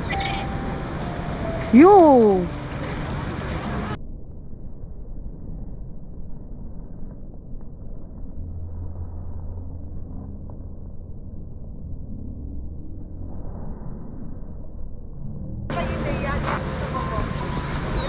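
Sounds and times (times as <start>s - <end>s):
low muffled rumble: 0.0s - 17.6s
steady low hum: 0.0s - 17.9s.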